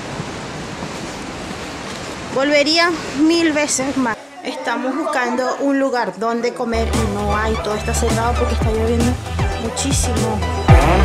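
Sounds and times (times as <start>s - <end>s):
falling water rushing: 0.0s - 4.2s.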